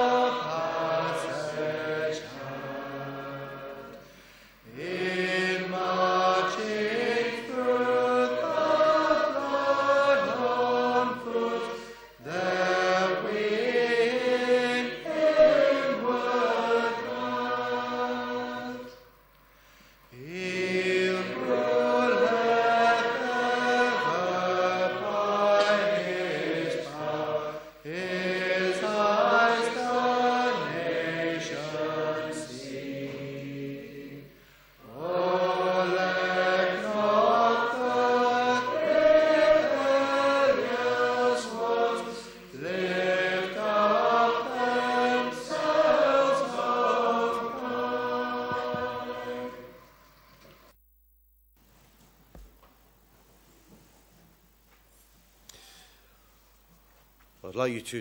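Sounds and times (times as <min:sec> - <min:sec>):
congregation singing a hymn: 0:00.0 - 0:19.2, 0:20.1 - 0:50.7.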